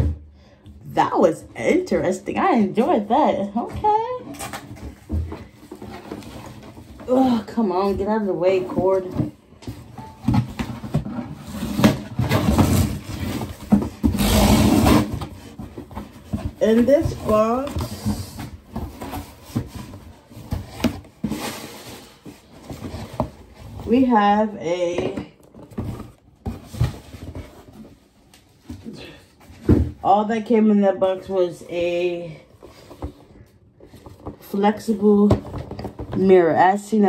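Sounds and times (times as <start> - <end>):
cardboard boxes knocking and rustling: 3.6 - 30.1, 31.9 - 36.4
cardboard box scraping: 10.5 - 24.2.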